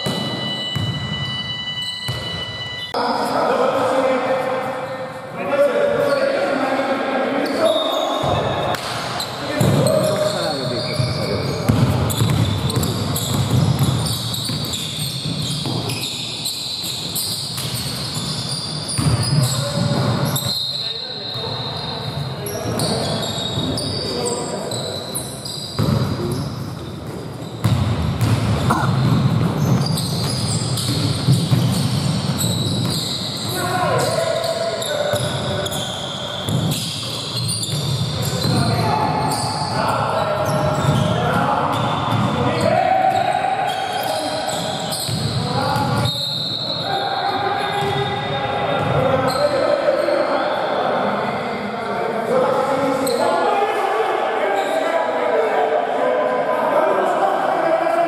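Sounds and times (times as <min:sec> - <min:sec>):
basketball bouncing on wooden court: 0:09.6 - 0:10.3, 0:10.9 - 0:16.0, 0:17.2 - 0:20.2, 0:27.0 - 0:33.2, 0:41.7 - 0:42.4, 0:45.1 - 0:46.1.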